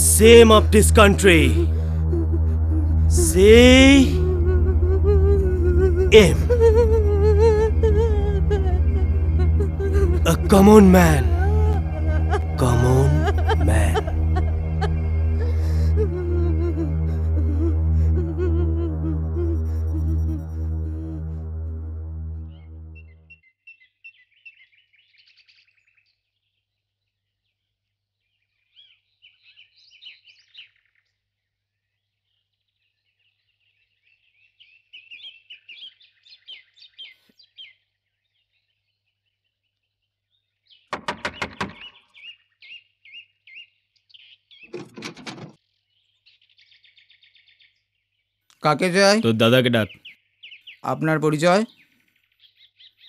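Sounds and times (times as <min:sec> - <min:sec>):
faint steady hum: 0:00.0 - 0:23.1
music: 0:00.0 - 0:23.3
birds chirping: 0:32.3 - 0:53.0
knocking on a door: 0:41.0 - 0:42.0.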